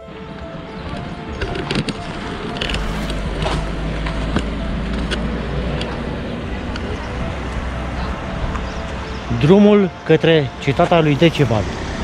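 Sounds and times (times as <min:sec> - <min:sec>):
steady low rumble: 0:02.0 - 0:09.2.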